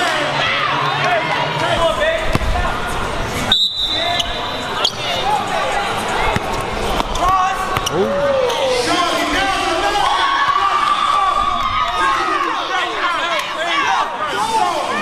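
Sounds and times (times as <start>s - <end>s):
spectators voices and shouts: 0.0s - 15.0s.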